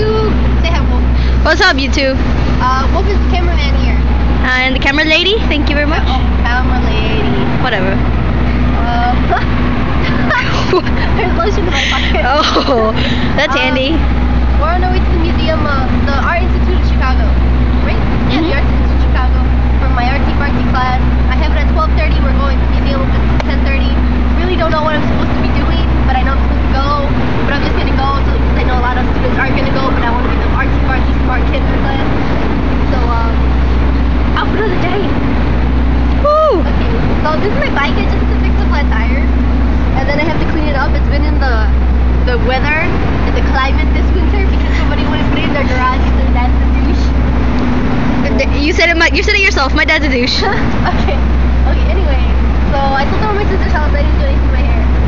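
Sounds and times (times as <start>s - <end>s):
city street rumble: 0.0s - 55.0s
indistinct voices: 0.0s - 55.0s.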